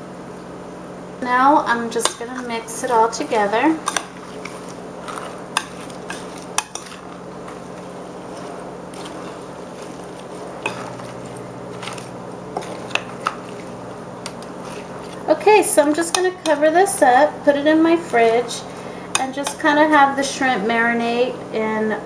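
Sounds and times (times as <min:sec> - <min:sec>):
spoon stirring shrimp in marinade: 0:01.9 - 0:17.3, 0:18.0 - 0:20.1.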